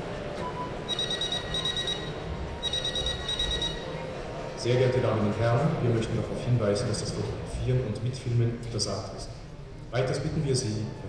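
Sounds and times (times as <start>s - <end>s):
murmur of audience: 0.0s - 11.0s
telephone ringing: 0.6s - 4.0s.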